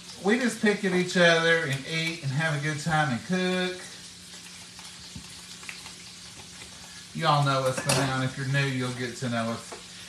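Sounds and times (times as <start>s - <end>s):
meat sizzling in a frying pan: 0.0s - 10.0s.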